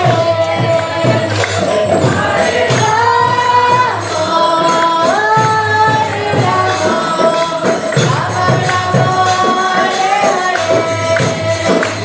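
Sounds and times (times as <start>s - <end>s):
jingling hand percussion: 0.0s - 12.0s.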